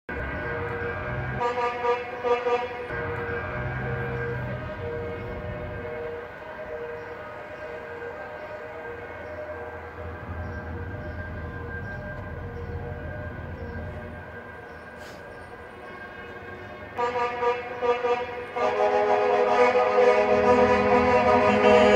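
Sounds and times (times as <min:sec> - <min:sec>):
traffic rumble: 0:00.1 - 0:21.9
pulsing horn tone: 0:00.3 - 0:14.3, 0:16.9 - 0:21.9
air horns honking: 0:00.6 - 0:08.2, 0:14.9 - 0:21.9.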